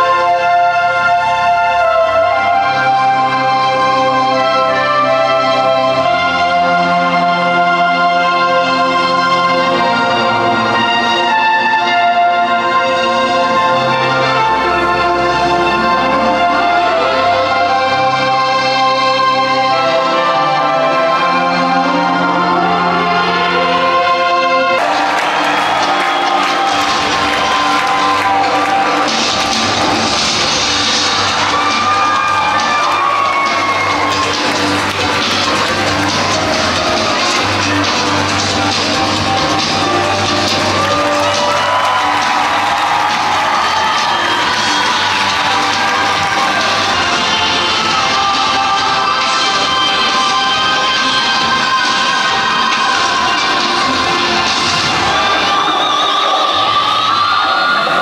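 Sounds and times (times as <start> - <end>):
loud show music: 0.0 - 58.0
audience cheering and whooping: 24.8 - 38.2, 39.8 - 50.1.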